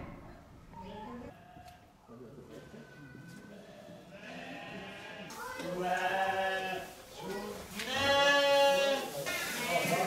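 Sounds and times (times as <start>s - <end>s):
goat bleating: 7.8s - 9.0s.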